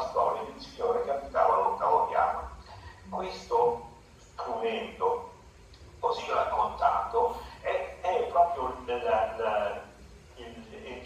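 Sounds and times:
man speaking over video call: 0.0 - 11.0.

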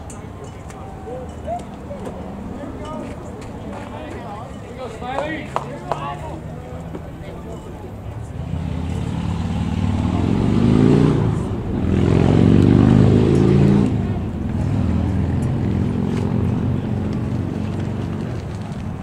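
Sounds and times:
vehicle engine accelerating: 8.4 - 19.0.

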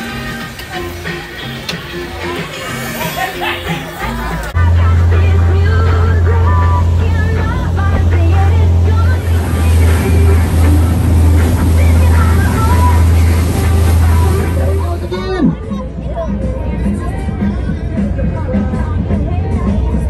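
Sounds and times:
water rushing and spraying: 0.0 - 15.6
boat engine rumble: 0.0 - 20.0
faint music: 0.0 - 20.0
faint voices: 0.3 - 20.0.

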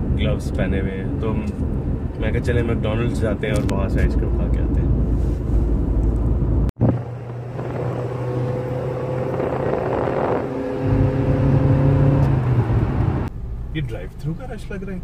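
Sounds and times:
car engine and road noise: 0.0 - 15.0.

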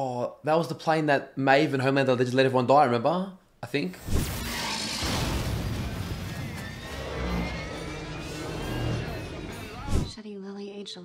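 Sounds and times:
dramatic music score: 4.8 - 10.2.

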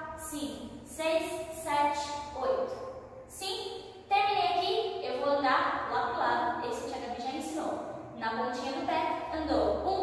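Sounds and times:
woman speaking: 0.0 - 10.0.

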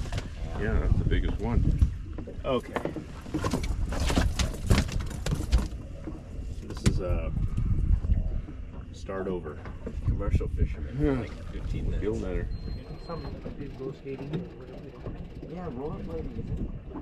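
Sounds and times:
knocks and clatter in a boat: 0.0 - 17.0
steady low rumble: 5.7 - 17.0.

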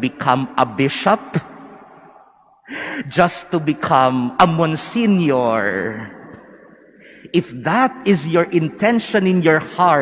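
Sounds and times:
man speaking in reverberant church: 0.0 - 10.0
sharp intake of breath: 2.6 - 3.1, 6.9 - 7.3.

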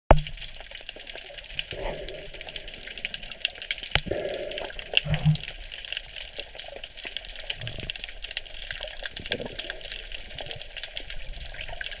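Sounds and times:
faint crackling clicks: 0.1 - 12.0
muffled underwater sloshing: 0.4 - 12.0.

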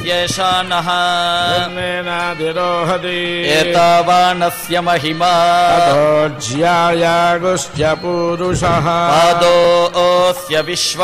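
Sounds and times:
men chanting together: 0.0 - 11.0.

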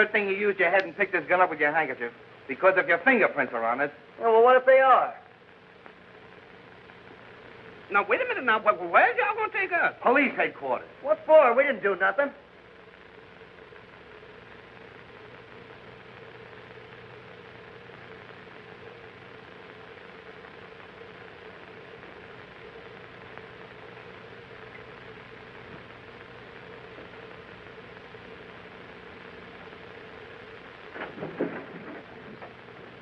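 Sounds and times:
faint hum: 0.0 - 33.0
film soundtrack hiss: 0.0 - 33.0.

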